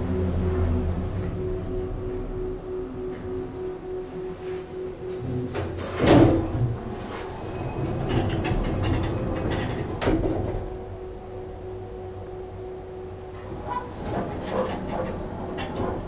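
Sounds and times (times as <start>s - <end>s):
steady low hum: 0.0s - 16.0s
elevator door operator rumbling: 4.9s - 11.9s, 13.2s - 16.0s
elevator door clunk: 5.1s - 11.0s, 13.3s - 16.0s.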